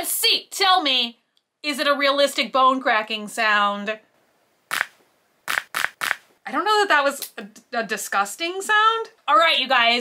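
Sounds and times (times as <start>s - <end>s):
plastic gadget cracking: 5.5s - 6.2s.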